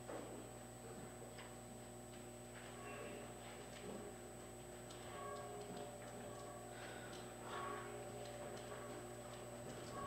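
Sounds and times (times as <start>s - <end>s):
low electrical hum: 0.0s - 10.0s
faint ticks and knocks: 1.3s - 10.0s.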